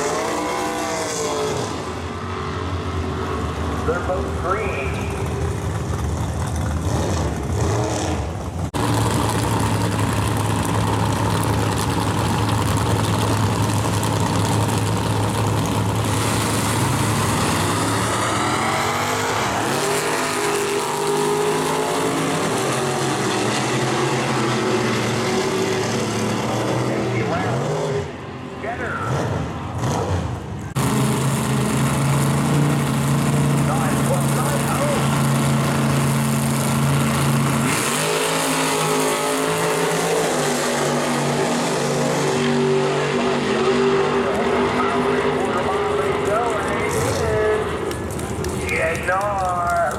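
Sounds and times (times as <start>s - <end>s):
car engines revving: 0.0s - 49.9s
cars accelerating through gears: 12.5s - 49.2s.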